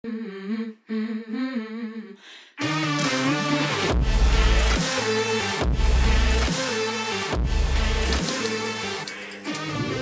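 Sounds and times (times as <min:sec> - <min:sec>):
woman humming: 0:00.0 - 0:02.3.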